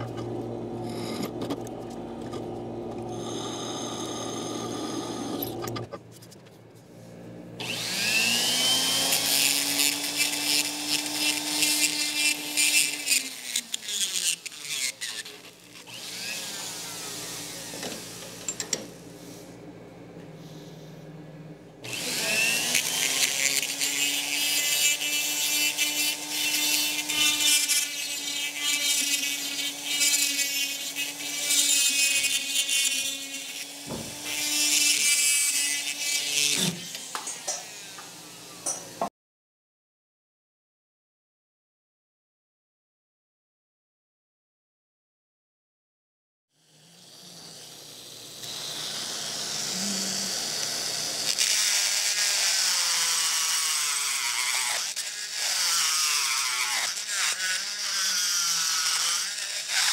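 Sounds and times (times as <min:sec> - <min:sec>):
die grinder grinding on steel: 0:00.0 - 0:06.0, 0:07.6 - 0:19.0, 0:21.8 - 0:39.0, 0:46.6 - 0:59.9.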